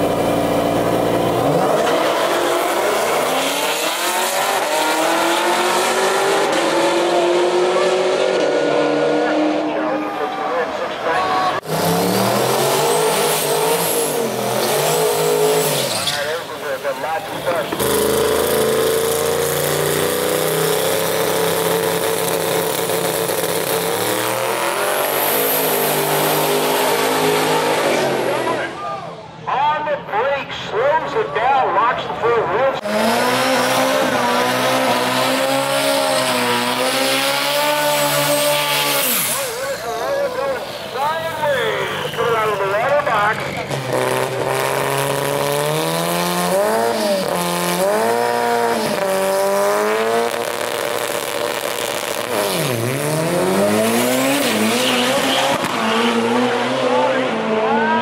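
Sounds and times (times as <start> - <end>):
car engines revving hard: 0.0 - 29.7, 31.8 - 58.0.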